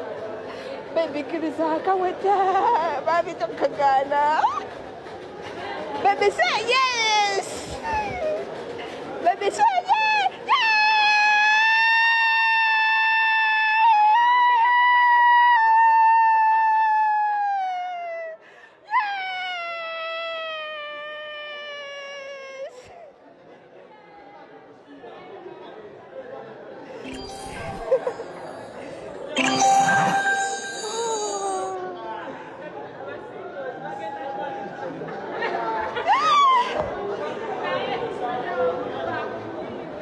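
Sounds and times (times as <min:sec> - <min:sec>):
people chattering excitedly: 0:00.0 - 0:11.2, 0:22.8 - 0:40.0.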